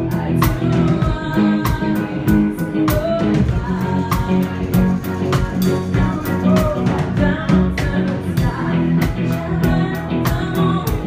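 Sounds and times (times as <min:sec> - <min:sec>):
drum kit steady beat: 0:00.0 - 0:11.0
live band playing pop song: 0:00.0 - 0:11.0
person singing: 0:00.0 - 0:11.0.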